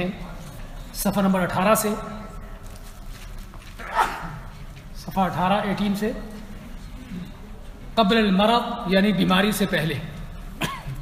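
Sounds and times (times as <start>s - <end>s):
man lecturing: 0.0s - 2.4s, 5.0s - 6.5s, 8.0s - 10.3s
room noise and hum: 0.0s - 11.0s.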